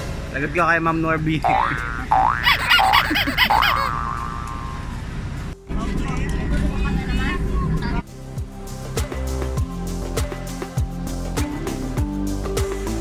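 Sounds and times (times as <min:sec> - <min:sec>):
bus engine hum: 0:01.7 - 0:08.0
faint passenger chatter: 0:05.7 - 0:08.0.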